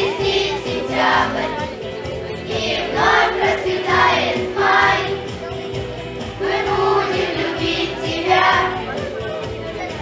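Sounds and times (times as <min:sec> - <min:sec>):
children's choir singing: 0:00.0 - 0:05.5, 0:06.2 - 0:09.0.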